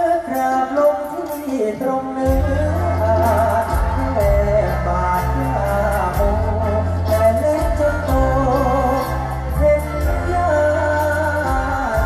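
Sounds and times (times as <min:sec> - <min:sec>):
heavy bass: 0:02.2 - 0:12.0.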